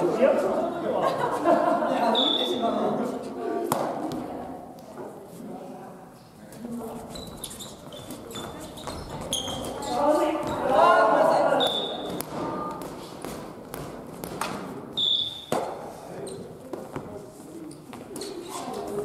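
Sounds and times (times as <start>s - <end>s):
shoe squeaks on wooden floor: 6.9s - 10.6s, 18.1s - 18.8s.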